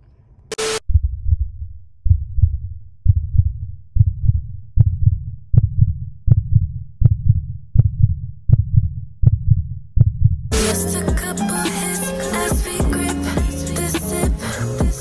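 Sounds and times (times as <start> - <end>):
hip hop music with bass thumps: 10.5 - 15.0.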